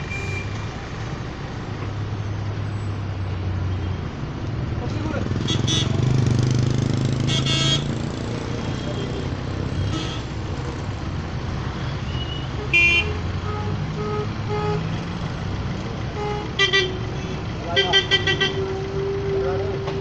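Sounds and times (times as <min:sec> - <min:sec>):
vehicle engines humming: 0:00.0 - 0:20.0
vehicle horns honking: 0:05.4 - 0:10.4, 0:12.0 - 0:15.2, 0:16.1 - 0:20.0.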